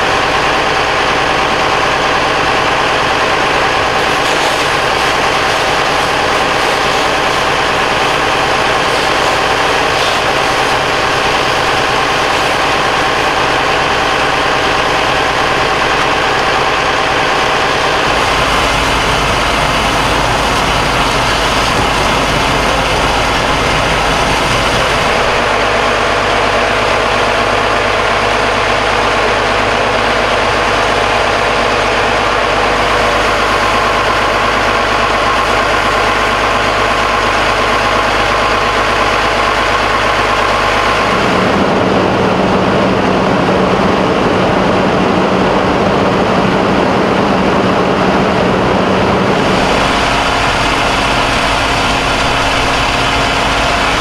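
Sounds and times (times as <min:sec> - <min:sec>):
diesel engine idling: 0:00.0 - 0:54.0
hiss: 0:04.0 - 0:13.4.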